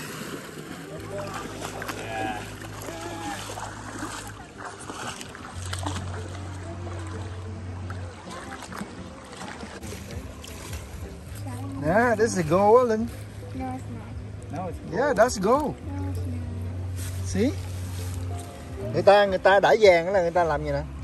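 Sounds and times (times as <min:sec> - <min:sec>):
faint distant voices: 0:00.0 - 0:21.0
shallow river flowing: 0:00.0 - 0:21.0
soft background music: 0:00.0 - 0:21.0.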